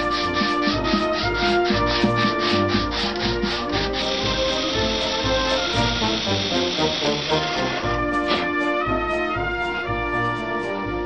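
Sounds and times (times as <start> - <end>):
hand-sanding wood: 0.0 - 8.5
background music: 0.0 - 11.0
electric drill boring into wood: 0.1 - 8.0.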